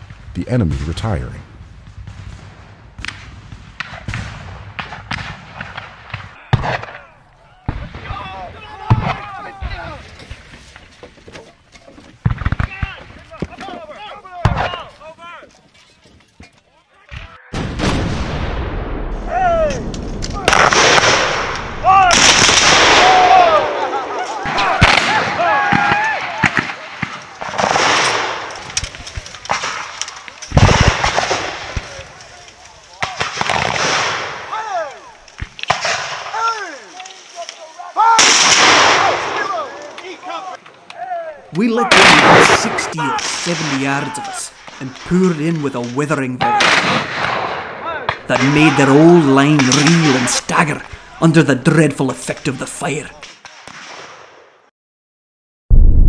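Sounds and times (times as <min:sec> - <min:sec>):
muskets firing: 0:01.8 - 0:10.1, 0:12.2 - 0:15.0, 0:17.2 - 0:18.9, 0:19.8 - 0:37.4, 0:38.0 - 0:40.2, 0:41.7 - 0:54.6
men shouting: 0:07.0 - 0:10.1, 0:22.9 - 0:26.5, 0:34.5 - 0:35.2, 0:36.3 - 0:38.3.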